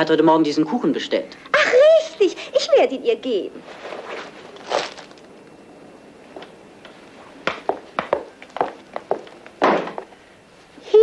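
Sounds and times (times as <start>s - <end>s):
film soundtrack hiss: 0.0s - 11.0s
scuffing noise: 3.6s - 5.3s, 6.3s - 10.8s
footsteps on hard floor: 6.3s - 10.1s.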